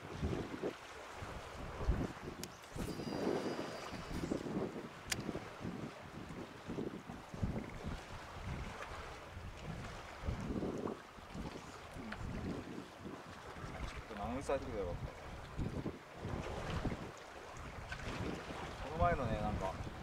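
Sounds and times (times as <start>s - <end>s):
water lapping against seawall: 0.0s - 20.0s
wind buffeting microphone: 0.0s - 20.0s
sharp click: 5.0s - 5.3s.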